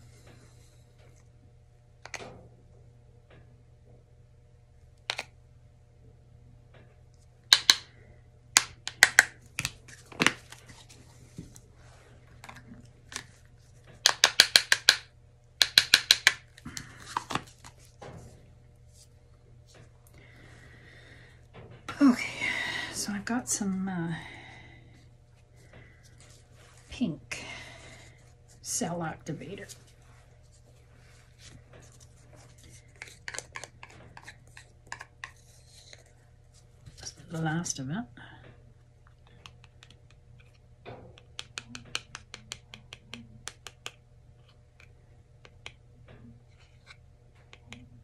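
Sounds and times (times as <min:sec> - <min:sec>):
steady low hum: 0:00.0 - 0:48.0
hard objects tapping together: 0:14.0 - 0:17.4
plastic bottles and cups clicking: 0:14.0 - 0:17.5.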